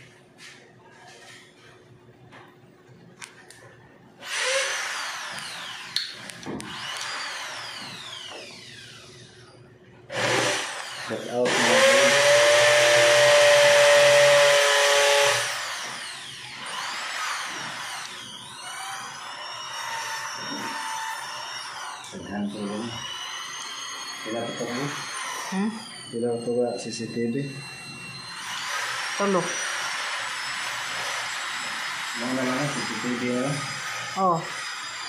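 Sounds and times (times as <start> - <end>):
power tool motor whirring: 4.2 - 9.4, 10.1 - 35.0.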